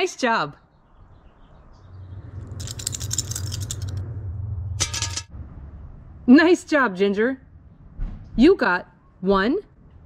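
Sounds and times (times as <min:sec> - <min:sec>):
low hum: 0:00.8 - 0:06.6
plastic counters rattling: 0:02.6 - 0:04.0.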